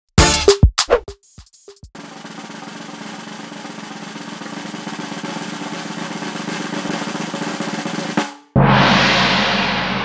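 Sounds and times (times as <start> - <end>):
snare drum roll: 1.7 - 10.0.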